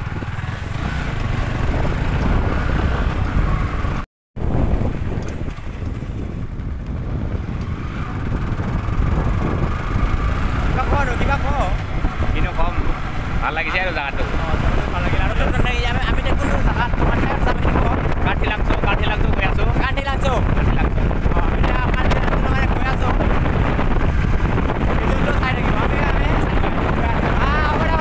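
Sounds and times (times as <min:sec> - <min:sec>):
motorcycle engine and road rumble: 0:00.0 - 0:28.0.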